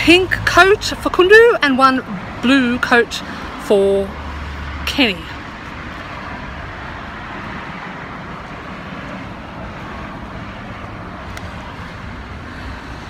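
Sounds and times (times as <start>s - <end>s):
road traffic noise: 0.0s - 13.0s.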